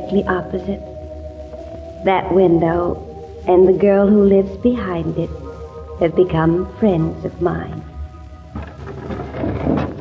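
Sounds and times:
held music chord: 0.0 - 9.0
low steady hum: 0.0 - 10.0.

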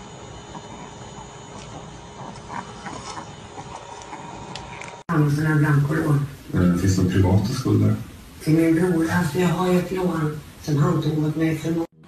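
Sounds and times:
low background hiss: 5.1 - 12.0.

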